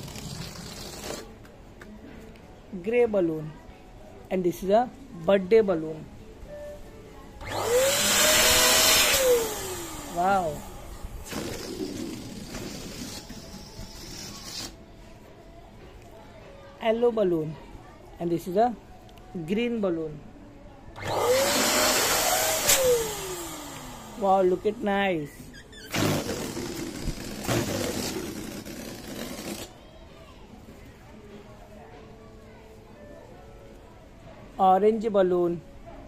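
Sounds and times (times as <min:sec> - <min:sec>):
electric balloon pump whining: 0:00.0 - 0:01.3, 0:07.4 - 0:14.8, 0:21.0 - 0:24.7, 0:25.6 - 0:29.7.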